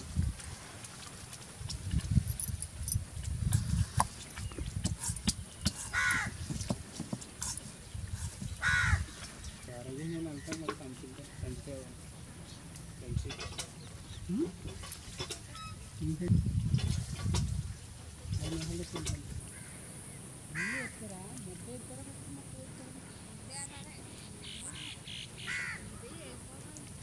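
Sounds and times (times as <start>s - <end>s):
crow cawing: 5.9s - 6.4s, 8.6s - 9.2s, 20.5s - 21.0s, 24.5s - 26.0s.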